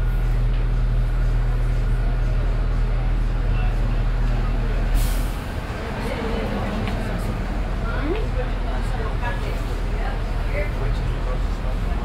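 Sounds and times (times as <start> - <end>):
bus low hum: 0.0 - 12.0
faint voices: 0.2 - 12.0
air brakes hissing: 4.9 - 5.7.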